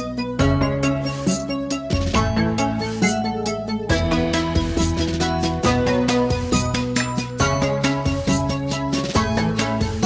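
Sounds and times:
instrumental music with steady beat: 0:00.0 - 0:10.0.

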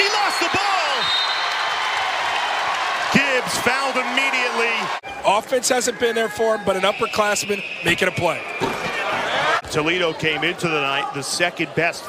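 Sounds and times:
crowd cheering and clapping: 0:00.0 - 0:06.9.

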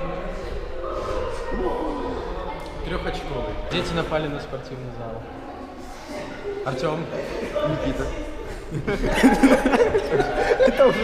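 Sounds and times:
children playing: 0:00.0 - 0:04.0, 0:05.2 - 0:11.0
voices talking in a gymnasium: 0:00.0 - 0:11.0.

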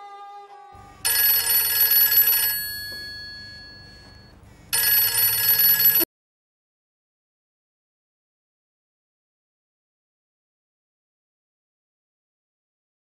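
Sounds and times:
telephone bell ringing: 0:01.0 - 0:06.1.

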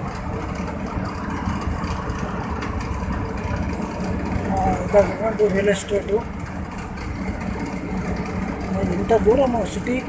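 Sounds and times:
vehicle engine and road noise: 0:00.0 - 0:10.0.

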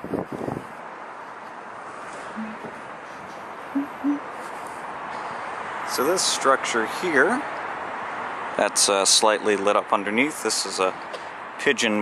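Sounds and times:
murmur of city noise: 0:00.0 - 0:12.0.

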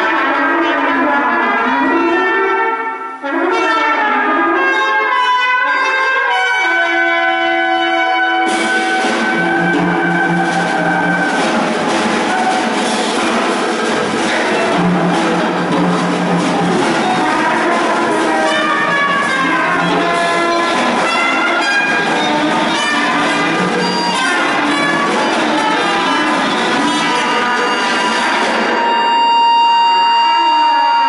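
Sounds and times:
live band playing: 0:04.7 - 0:31.0
high held note: 0:07.6 - 0:31.0.

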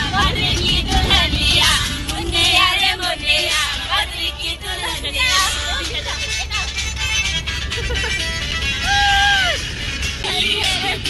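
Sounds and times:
voices: 0:00.0 - 0:09.6, 0:10.2 - 0:11.0
bus rumble: 0:00.0 - 0:11.0
music: 0:00.0 - 0:11.0.

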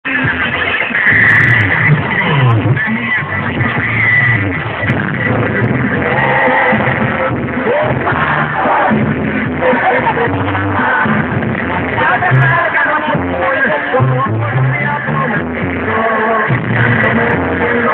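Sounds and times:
tuba bass line: 0:00.0 - 0:17.9
live banda brass music: 0:00.1 - 0:17.9.

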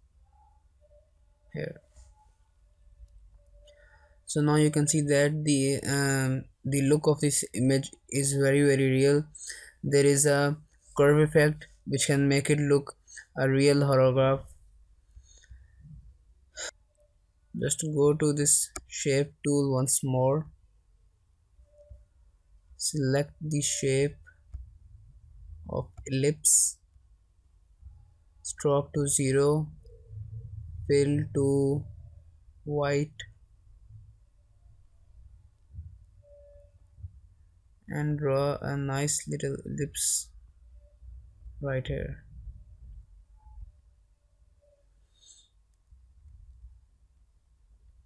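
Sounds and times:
faint low hum: 0:00.0 - 0:48.0
faint room noise: 0:00.0 - 0:48.0
faint steady tone: 0:00.0 - 0:48.0.

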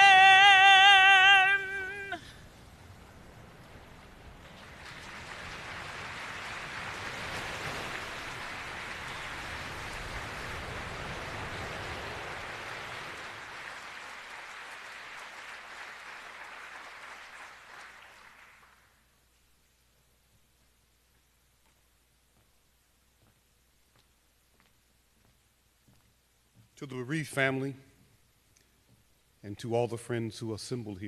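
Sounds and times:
audience applauding: 0:00.0 - 0:02.3, 0:03.9 - 0:19.1.

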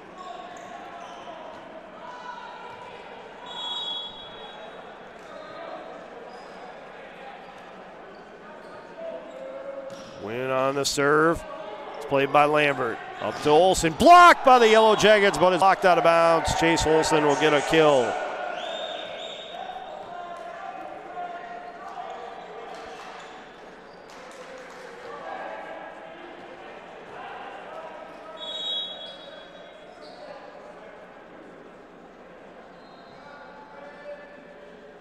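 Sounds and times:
murmur of voices in a hall: 0:00.0 - 0:35.0.

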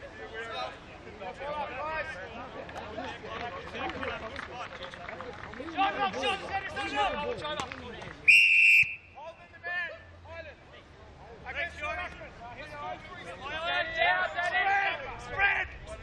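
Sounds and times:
shrill whistle blast: 0:08.3 - 0:09.2.

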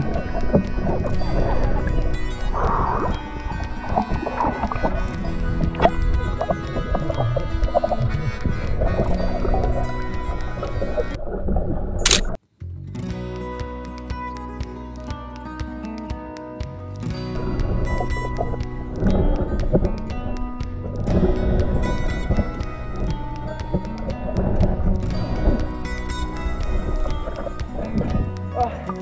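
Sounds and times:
background music: 0:00.0 - 0:11.2, 0:12.1 - 0:29.0.

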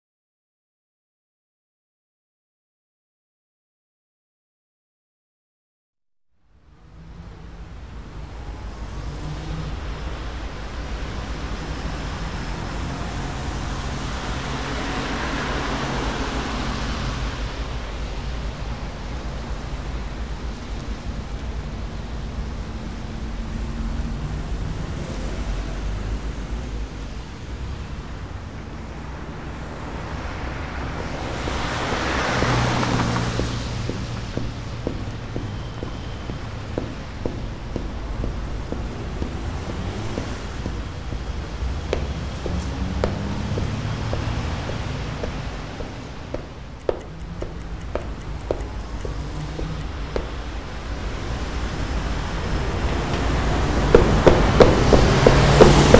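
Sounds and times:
road traffic rumble: 0:06.4 - 0:55.9.

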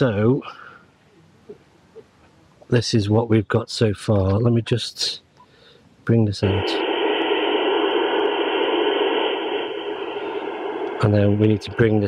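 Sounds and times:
radio receiver hiss: 0:06.3 - 0:12.0.

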